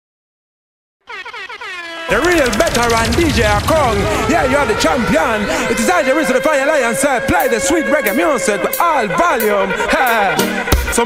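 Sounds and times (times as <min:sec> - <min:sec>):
air horn blasts: 0:01.0 - 0:11.0.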